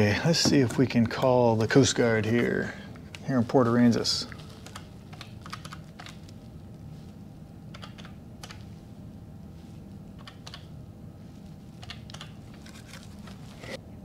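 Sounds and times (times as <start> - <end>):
faint room hum: 0.0 - 14.0.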